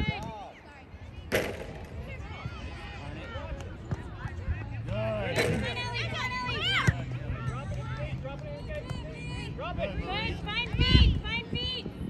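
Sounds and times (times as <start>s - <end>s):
voices calling and shouting: 0.0s - 12.0s
sharp thump: 1.3s - 2.1s, 5.3s - 5.9s.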